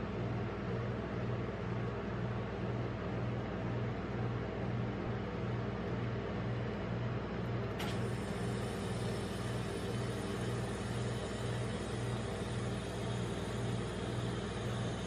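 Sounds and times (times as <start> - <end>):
refrigeration compressor hum: 0.0 - 15.0.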